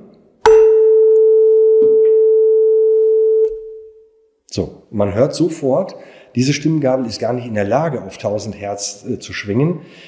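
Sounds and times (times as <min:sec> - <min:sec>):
tuning fork pure tone: 0:00.4 - 0:04.3.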